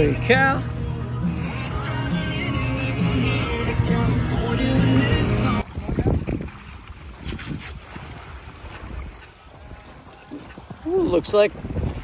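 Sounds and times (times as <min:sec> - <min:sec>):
boots splashing through water: 0:04.6 - 0:12.0
wind buffeting microphone: 0:05.6 - 0:12.0.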